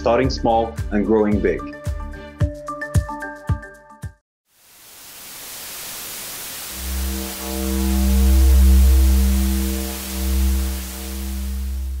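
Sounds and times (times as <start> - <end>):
soft hiss: 4.5 - 12.0
held chord: 6.7 - 12.0
deep bass drone: 6.8 - 12.0.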